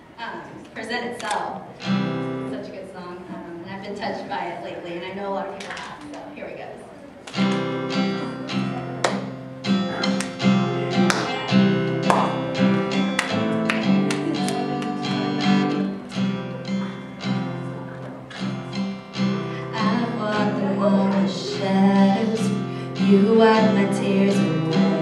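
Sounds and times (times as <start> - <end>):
acoustic guitar strumming chords: 1.7 - 2.7, 7.3 - 25.0.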